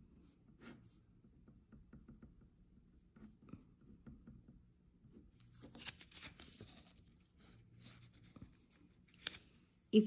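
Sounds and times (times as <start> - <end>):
marker scratching on paper: 0.2 - 1.1, 2.9 - 4.1.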